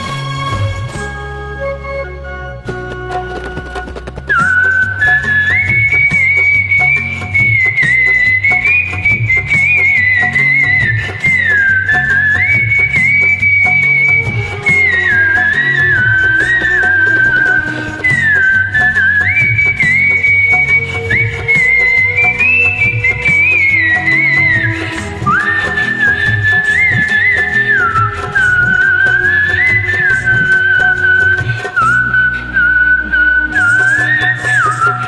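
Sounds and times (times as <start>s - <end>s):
whistled melody over backing track: 0.0s - 35.0s.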